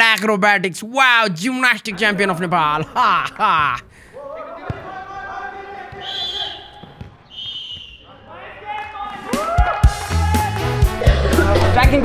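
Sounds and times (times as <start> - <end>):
players calling out: 0.0 - 12.0
football bouncing on turf: 6.7 - 7.9.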